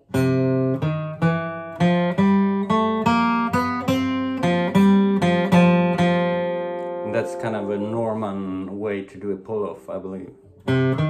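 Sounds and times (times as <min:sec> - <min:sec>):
acoustic guitar flatpicked lick: 0:00.0 - 0:09.0, 0:10.4 - 0:11.0.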